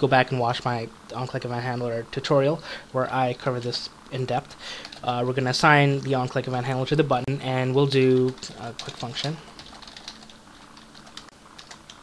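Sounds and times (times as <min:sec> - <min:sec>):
computer keyboard typing: 0:04.5 - 0:05.2, 0:07.9 - 0:12.0.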